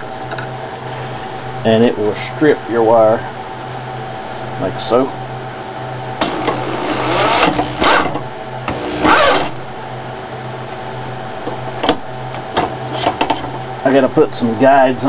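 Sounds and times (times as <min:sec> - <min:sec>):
electric drill motor whir: 0:06.2 - 0:09.6
wire insulation scraping: 0:06.2 - 0:09.6.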